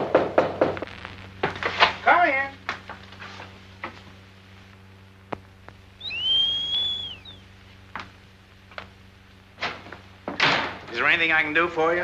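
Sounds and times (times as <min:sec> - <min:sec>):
man wolf whistling: 0:06.0 - 0:07.4.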